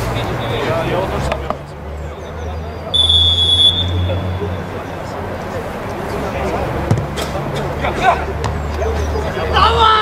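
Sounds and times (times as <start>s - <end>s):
distant shouting: 1.8s - 10.0s
referee's whistle blast: 3.0s - 4.5s.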